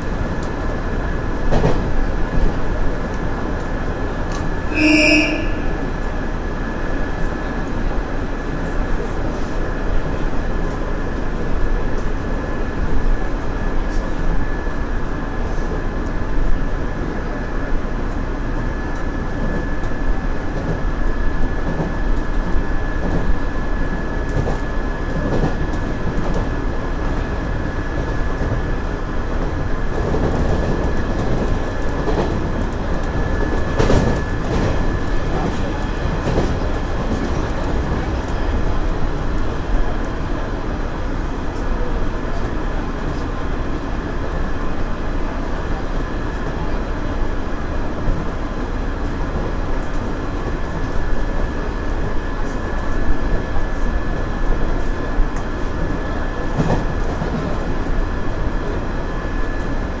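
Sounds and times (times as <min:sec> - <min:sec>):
train wheel and rail rumble: 0:00.0 - 1:00.0.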